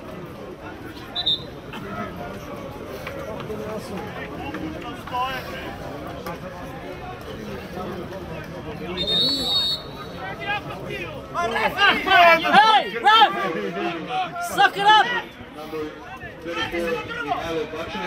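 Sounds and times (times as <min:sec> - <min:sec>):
spectators chattering: 0:00.0 - 0:18.0
referee's whistle: 0:01.1 - 0:01.6, 0:08.9 - 0:10.3.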